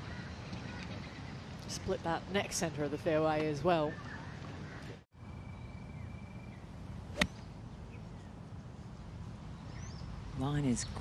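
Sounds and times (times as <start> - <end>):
golf club striking ball: 7.1 - 7.5.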